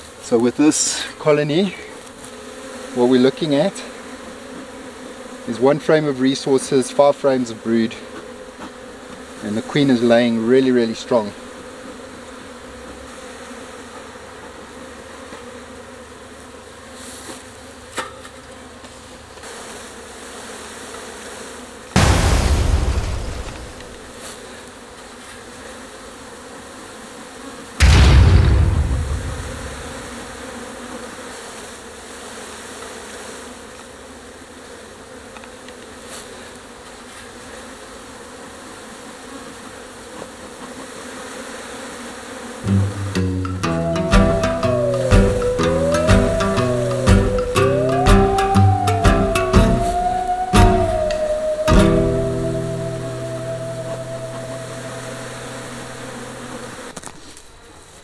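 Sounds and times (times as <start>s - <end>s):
bees buzzing: 0.0s - 57.0s
loud thumps: 22.0s - 24.1s, 27.8s - 30.5s, 42.7s - 54.4s.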